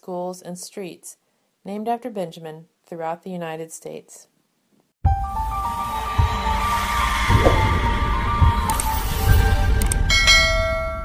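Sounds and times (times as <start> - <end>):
low rumbling: 7.3 - 8.7
click: 9.8 - 10.0.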